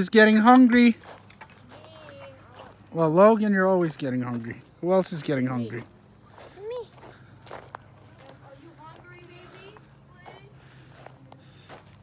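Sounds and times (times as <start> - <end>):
footsteps on wood-chip mulch: 0.3 - 12.0.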